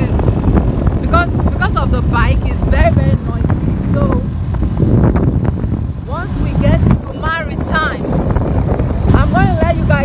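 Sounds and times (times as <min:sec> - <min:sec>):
woman talking: 0:00.0 - 0:00.4, 0:01.0 - 0:04.3, 0:06.0 - 0:08.1, 0:09.1 - 0:10.0
wind buffeting microphone: 0:00.0 - 0:10.0.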